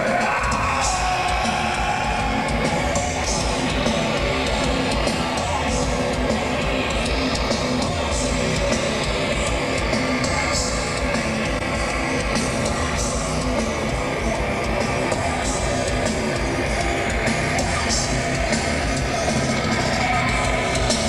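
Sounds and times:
distorted electric guitars: 0.0s - 21.0s
drums: 0.0s - 21.0s.

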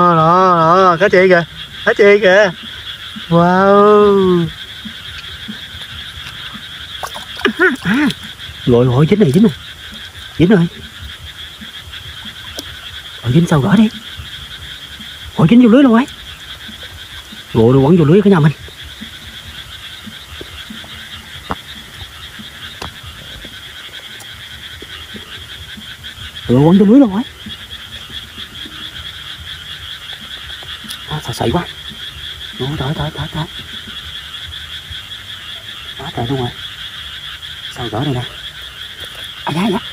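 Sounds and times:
frogs calling in chorus: 0.0s - 39.9s.

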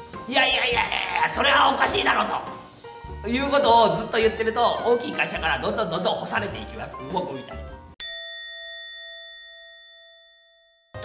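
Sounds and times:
bell-like ding: 8.0s - 11.0s.

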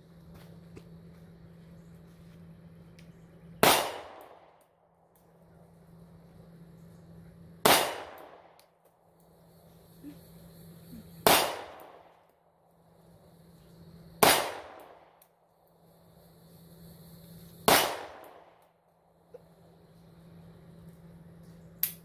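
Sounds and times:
pistol shots: 3.6s - 4.5s, 7.6s - 8.6s, 11.2s - 12.1s, 14.2s - 15.1s, 17.6s - 18.5s.

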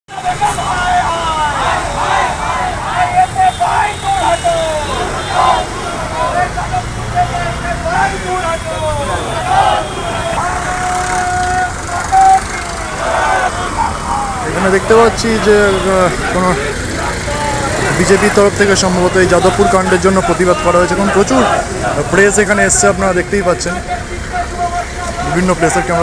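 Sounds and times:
crowd shouting slogans: 0.1s - 22.9s, 23.8s - 26.0s
street traffic: 0.1s - 26.0s.

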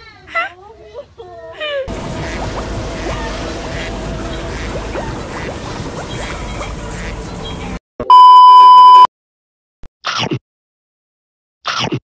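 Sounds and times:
censor bleep tone: 8.0s - 9.1s.

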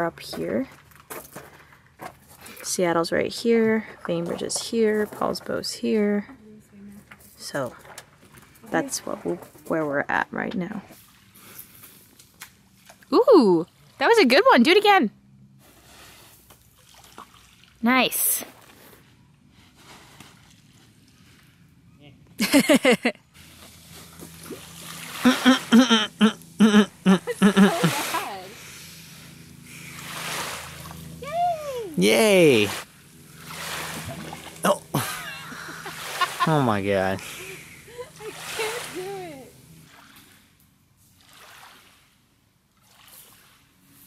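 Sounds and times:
water splashing at shoreline: 15.8s - 18.9s, 23.4s - 44.0s
person speaking: 25.2s - 28.6s, 31.2s - 32.8s, 36.4s - 39.5s.

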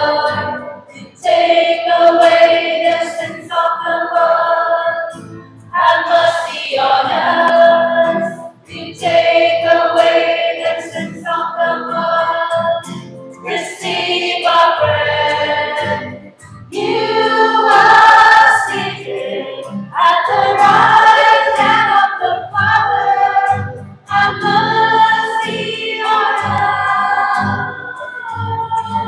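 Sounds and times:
women's choir singing hymn: 0.0s - 29.0s.

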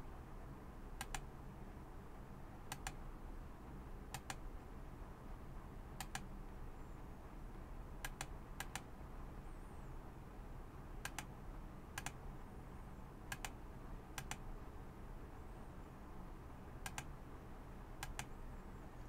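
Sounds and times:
low steady hum: 0.0s - 19.0s
computer mouse clicking: 1.0s - 1.3s, 2.7s - 3.0s, 4.1s - 4.4s, 6.0s - 6.3s, 8.0s - 8.9s, 11.0s - 11.3s, 12.0s - 12.2s, 13.3s - 13.6s, 14.2s - 14.4s, 16.8s - 17.1s, 18.0s - 18.3s.

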